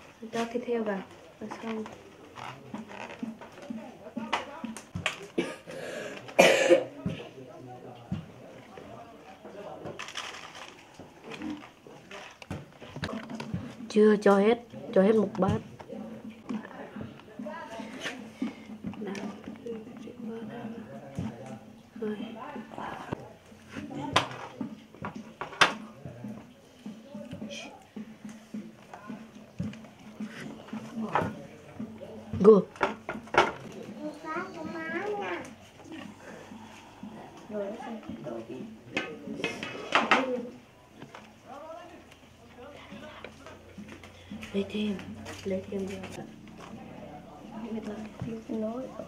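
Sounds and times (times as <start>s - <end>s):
person coughing: 5.4s - 6.9s.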